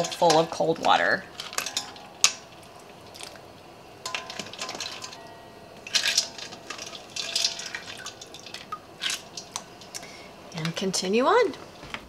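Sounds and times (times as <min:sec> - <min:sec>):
slotted spoon scooping in water: 0:05.9 - 0:09.2
water splashing and dripping: 0:05.9 - 0:09.6.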